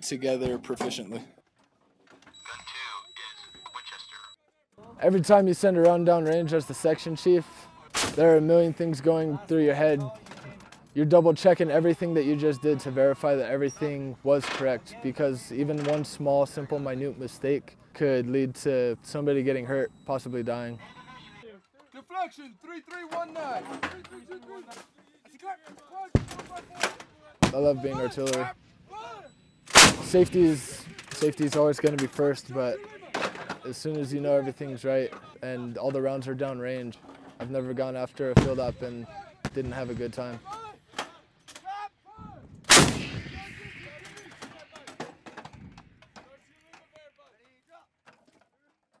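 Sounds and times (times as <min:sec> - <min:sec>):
short gun crack: 0:29.7 - 0:30.1, 0:42.6 - 0:45.6
loud sharp gun bang: 0:29.7 - 0:30.4, 0:42.3 - 0:45.8
howitzer blast: 0:29.7 - 0:30.7, 0:42.3 - 0:45.9.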